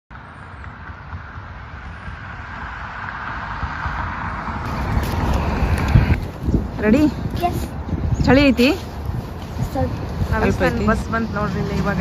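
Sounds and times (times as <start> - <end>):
approaching vehicle engine and tyres: 0.1 - 12.0.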